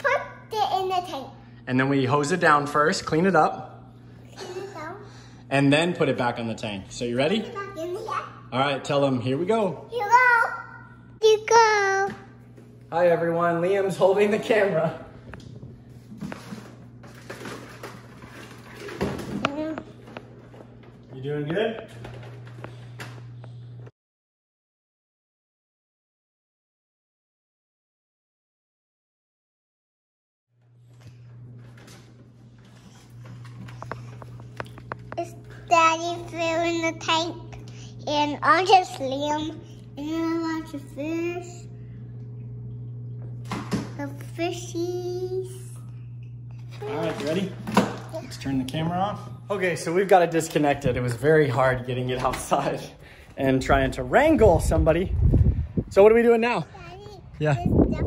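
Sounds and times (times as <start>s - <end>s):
low hum: 30.6s - 44.4s, 45.2s - 50.1s.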